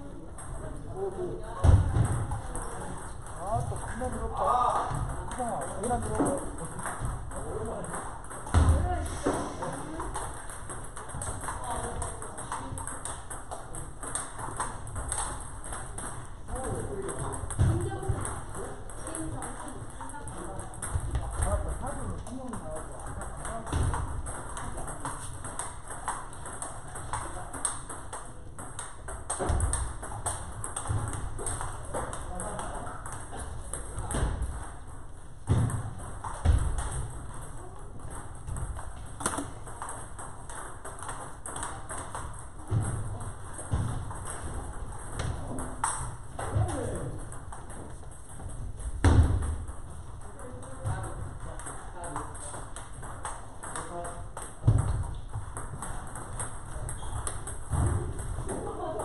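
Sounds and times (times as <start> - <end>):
table tennis balls clicking: 0.0 - 59.0.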